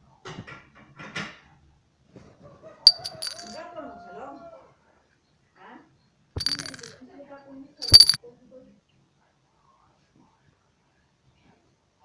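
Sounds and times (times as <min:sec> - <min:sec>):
coin clinking against glass: 0:02.9 - 0:03.6, 0:06.4 - 0:07.0, 0:07.8 - 0:08.2.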